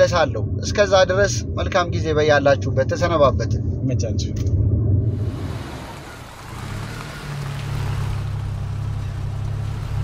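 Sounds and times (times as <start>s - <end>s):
car engine hum with hiss: 5.1s - 10.0s.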